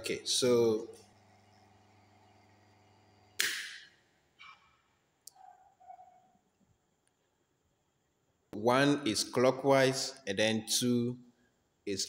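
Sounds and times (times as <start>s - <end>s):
motor mains hum: 0.4s - 3.4s.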